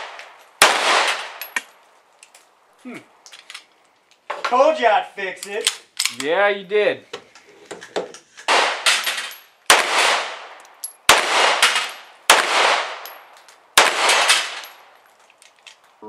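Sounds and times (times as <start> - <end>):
pistol shots echoing: 0.0 - 1.5, 8.5 - 13.2, 13.8 - 14.9.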